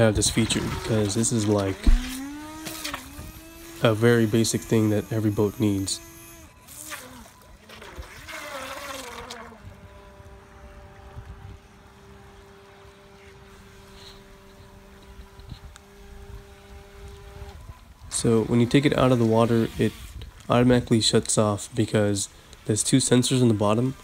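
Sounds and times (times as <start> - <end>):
electric boat motor whining: 0.0 - 20.8, 22.3 - 24.0.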